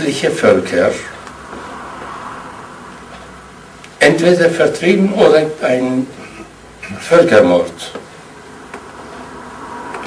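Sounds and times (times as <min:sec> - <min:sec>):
room hiss and low hum: 0:00.0 - 0:10.0.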